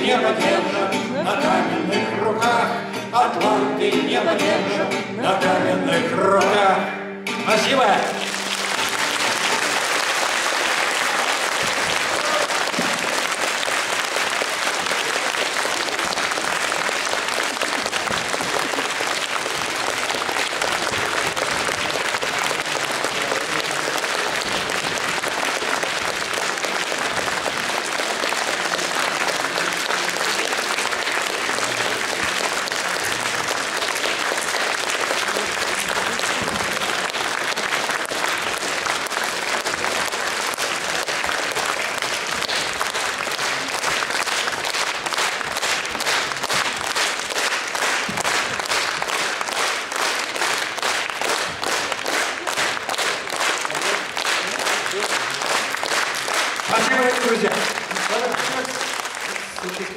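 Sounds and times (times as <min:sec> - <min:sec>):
audience applauding: 0:07.7 - 0:59.9.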